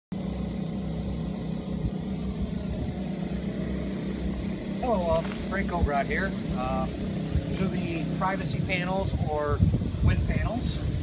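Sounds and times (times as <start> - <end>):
low mechanical rumble and hum: 0.1 - 11.0.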